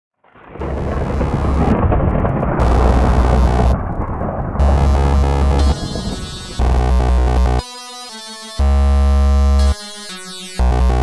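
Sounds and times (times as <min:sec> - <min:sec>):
thunder-like rumble: 0:00.2 - 0:07.6
heavy sub-bass: 0:00.6 - 0:07.6, 0:08.6 - 0:09.8, 0:10.6 - 0:11.0.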